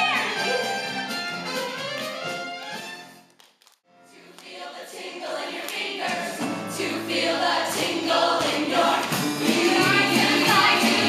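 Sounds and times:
instrumental accompaniment: 0:00.0 - 0:03.4
ensemble singing in chorus: 0:04.1 - 0:11.0.

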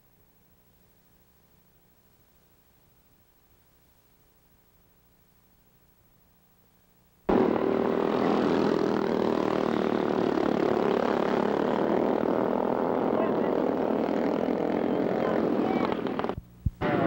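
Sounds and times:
go-kart engines buzzing: 0:07.3 - 0:17.0
voices: 0:11.9 - 0:17.0.

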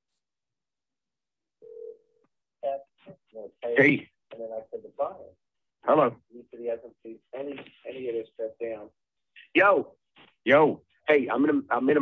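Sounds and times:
telephone tone: 0:01.6 - 0:02.2.

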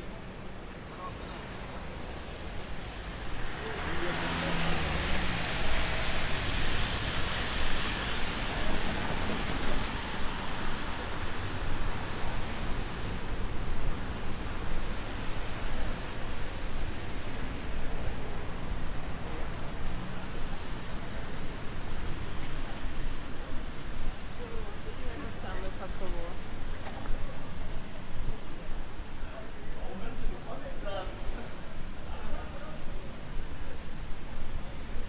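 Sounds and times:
car engines: 0:00.0 - 0:35.0
tyres hissing on wet road: 0:00.1 - 0:35.0.

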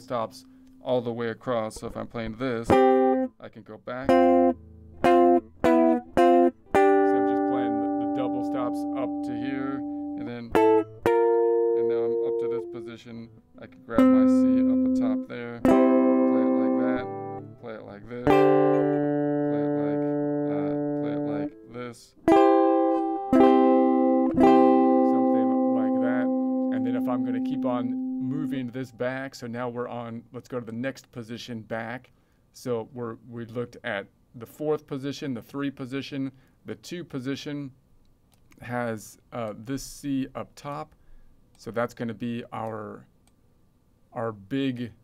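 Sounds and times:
electric guitar playing double stops: 0:22.3 - 0:28.8.

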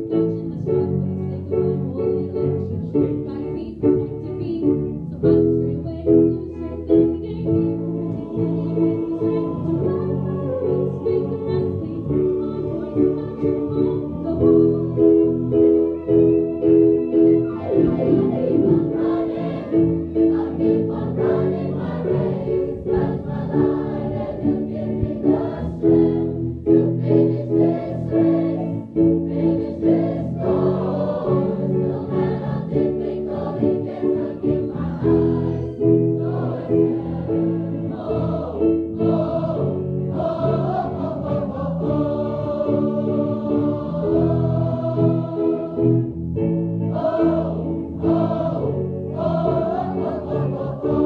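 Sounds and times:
large choir singing: 0:05.2 - 0:51.0
rhythmic bass accompaniment: 0:16.5 - 0:37.3.

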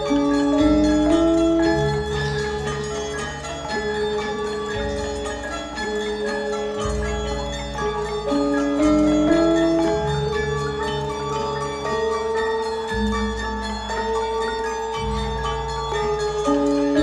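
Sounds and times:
gamelan gongs and metallophones: 0:00.0 - 0:17.0.

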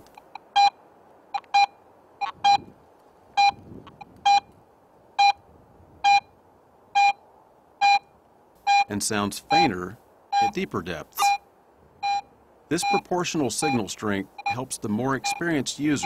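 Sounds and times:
metal detector beeping: 0:00.2 - 0:00.8, 0:01.4 - 0:02.7, 0:03.4 - 0:03.6, 0:04.2 - 0:04.5, 0:05.2 - 0:05.4, 0:06.0 - 0:06.3, 0:07.0 - 0:07.2, 0:07.8 - 0:08.1, 0:08.7 - 0:08.9, 0:10.4 - 0:10.6, 0:11.2 - 0:11.4, 0:12.0 - 0:16.0.

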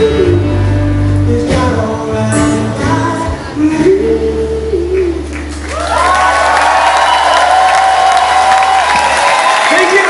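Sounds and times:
audience applause and cheering: 0:05.2 - 0:10.0
long whoop: 0:05.7 - 0:09.8.

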